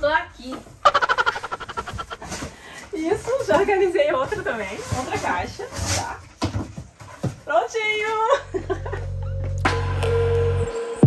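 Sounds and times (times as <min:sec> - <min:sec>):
person laughing: 0:00.8 - 0:02.5.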